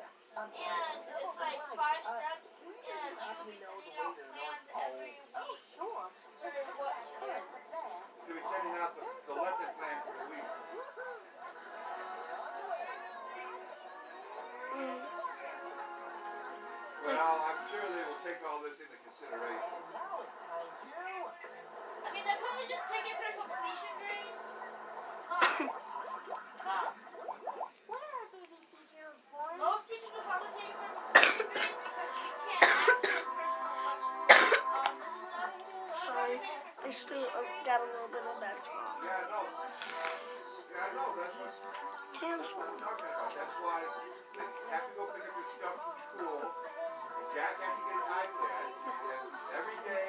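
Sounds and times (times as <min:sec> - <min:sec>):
background music: 0:00.0 - 0:27.9, 0:29.5 - 0:50.0
indistinct voices chattering: 0:00.0 - 0:50.0
boy coughing: 0:25.3 - 0:25.8, 0:31.1 - 0:31.8, 0:32.6 - 0:33.3, 0:34.3 - 0:34.8.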